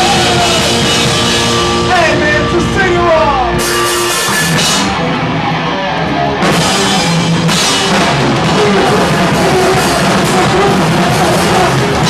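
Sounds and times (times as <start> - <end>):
pounding drum kit: 0.0 - 5.4, 6.3 - 12.0
loud distorted guitar: 0.0 - 12.0.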